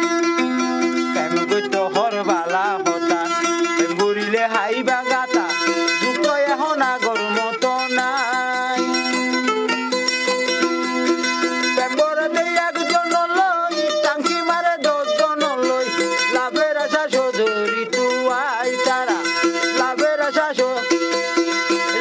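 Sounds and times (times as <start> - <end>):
mandolin strumming: 0.0 - 22.0
man singing: 1.1 - 9.5, 11.6 - 22.0.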